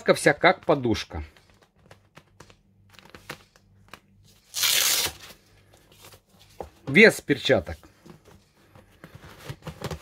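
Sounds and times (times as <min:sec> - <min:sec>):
velcro strap ripping open: 0:04.4 - 0:05.4.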